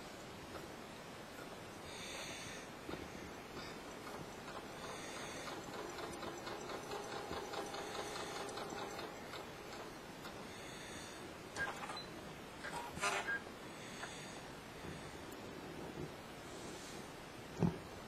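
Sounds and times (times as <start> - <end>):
sewing machine stitching: 4.0 - 9.9.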